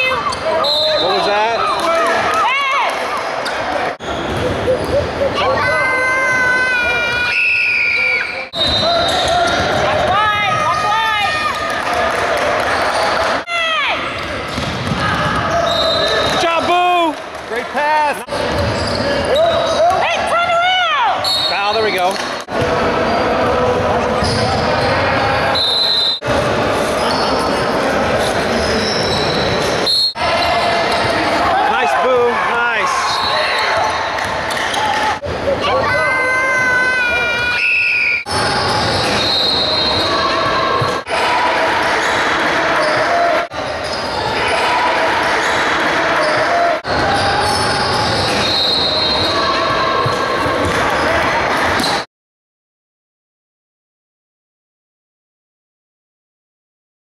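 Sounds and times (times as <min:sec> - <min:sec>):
players and spectators voices: 0:00.0 - 0:52.1.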